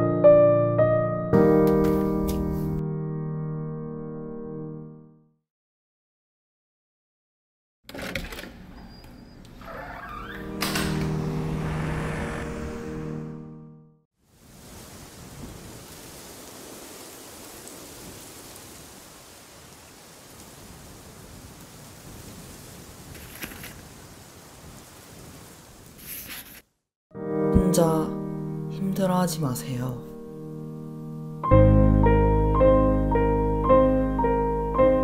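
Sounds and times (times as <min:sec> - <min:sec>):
door handle and latch clicks: 0:10.1 - 0:11.2
rushing noise: 0:10.5 - 0:13.7.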